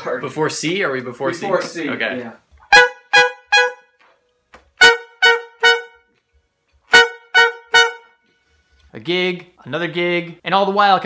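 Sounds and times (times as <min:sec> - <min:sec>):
saxophone and trumpet staccato hits: 0:02.6 - 0:03.9, 0:04.7 - 0:06.1, 0:06.9 - 0:08.1.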